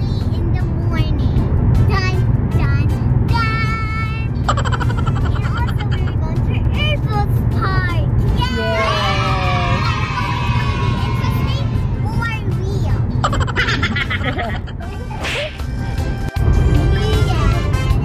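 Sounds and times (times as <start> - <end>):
music: 0.0 - 18.0
road and engine rumble in car: 0.0 - 18.0
children's voices: 5.3 - 13.4.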